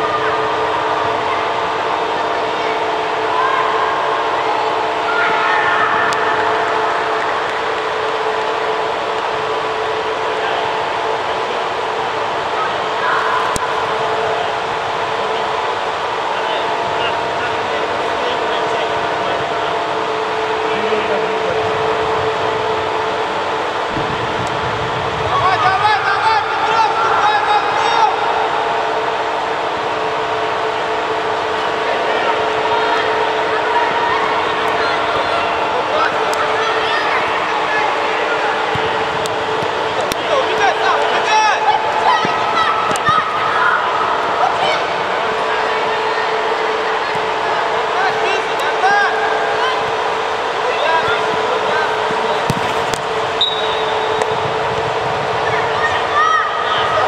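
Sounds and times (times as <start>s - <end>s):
droning hum of indoor hall: 0.0s - 57.0s
players shouting with echo: 0.0s - 57.0s.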